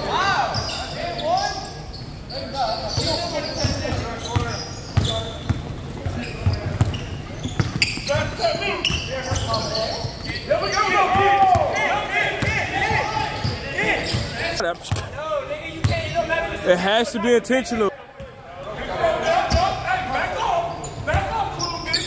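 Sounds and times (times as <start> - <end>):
sneakers squeaking: 0.0 - 16.5, 18.2 - 22.0.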